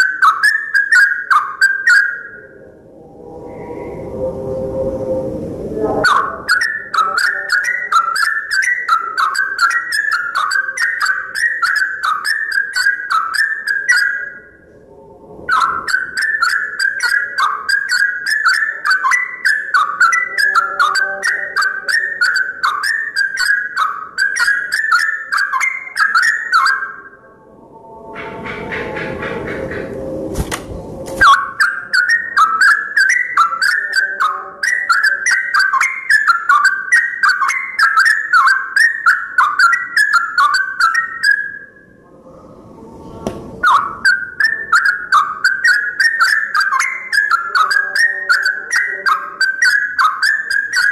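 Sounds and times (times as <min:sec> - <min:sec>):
bird singing bubbly phrases: 0:00.0 - 0:04.1, 0:05.9 - 0:27.2, 0:31.2 - 0:41.9, 0:43.6 - 0:50.9
loud rustling noise: 0:28.3 - 0:31.3.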